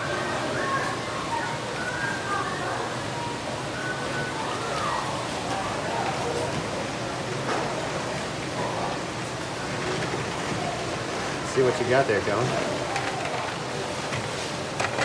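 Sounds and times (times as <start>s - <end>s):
water rushing down a flume: 0.0s - 15.0s
wooden box worked in water: 3.0s - 15.0s.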